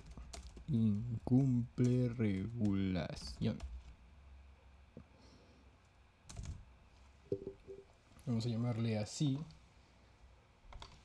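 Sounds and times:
typing on computer keyboard: 0.0s - 3.9s, 6.3s - 6.6s
low room hum: 0.0s - 11.0s.

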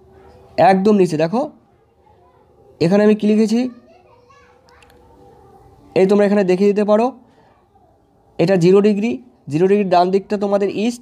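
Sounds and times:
faint children's voices: 0.0s - 11.0s.

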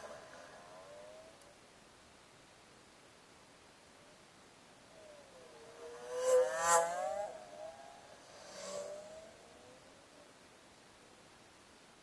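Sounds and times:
vehicle engine driving away: 0.0s - 1.5s, 5.0s - 9.9s.

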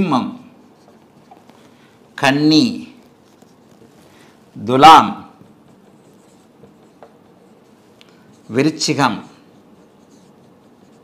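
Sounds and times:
marker scratching on whiteboard: 5.3s - 11.0s.

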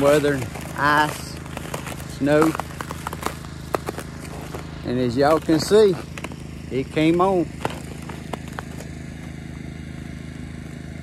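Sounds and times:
generator engine humming: 0.0s - 11.0s.

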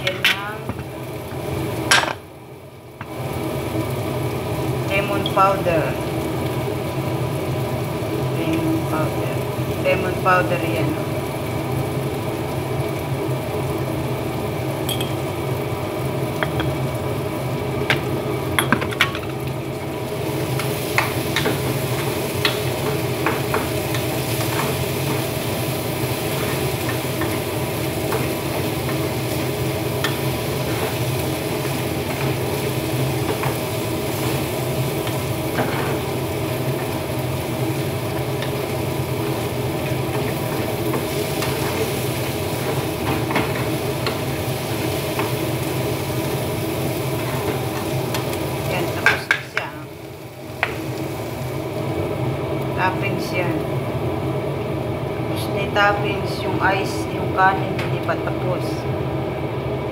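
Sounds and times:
steady hum: 0.0s - 59.9s
sugary mixture sizzling in pot: 0.0s - 59.9s.

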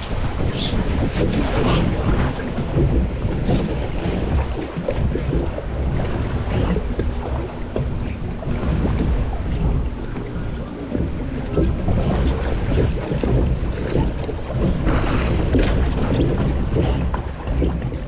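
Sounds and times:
water running along flume: 0.0s - 18.0s
wind rumbling on microphone: 0.0s - 18.0s.

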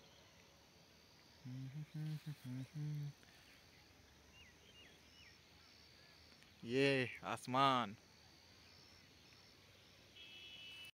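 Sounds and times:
faint background hiss: 0.0s - 10.9s
faint high steady buzz: 0.0s - 10.9s.

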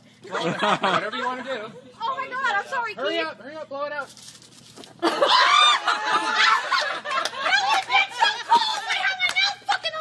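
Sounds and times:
people laughing hard: 0.2s - 1.8s, 5.0s - 9.2s.

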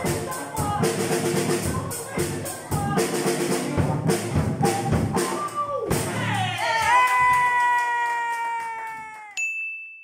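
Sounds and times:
high ding: 9.4s - 10.0s.

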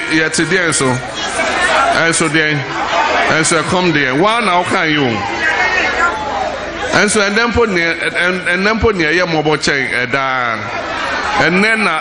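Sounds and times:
man's amplified voice: 0.0s - 1.1s, 1.9s - 5.4s, 6.9s - 10.8s, 11.4s - 12.0s
murmur of many voices: 0.0s - 12.0s.

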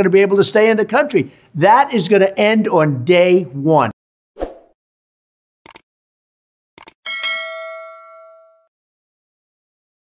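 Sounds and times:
bell chime ding: 7.1s - 8.7s.

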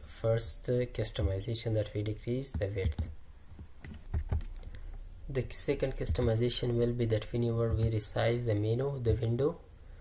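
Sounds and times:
computer keyboard key clicks: 2.1s - 4.8s.

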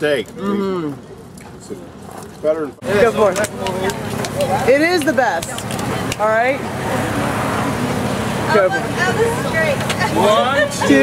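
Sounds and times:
road traffic passing: 0.0s - 11.0s
voices talking: 2.7s - 11.0s.

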